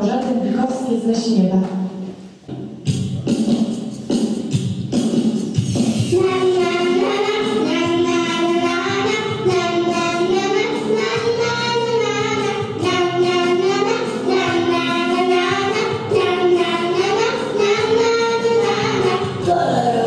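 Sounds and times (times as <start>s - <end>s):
instrumental accompaniment: 2.4s - 20.0s
girls singing a duet: 6.1s - 20.0s.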